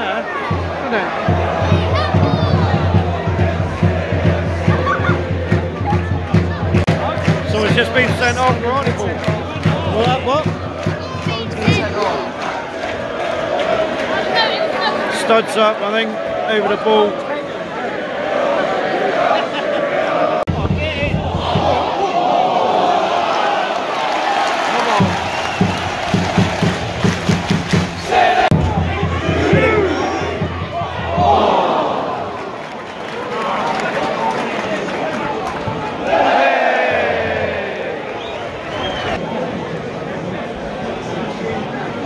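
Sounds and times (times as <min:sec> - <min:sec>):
stadium crowd shouting and chanting: 0:00.0 - 0:42.0.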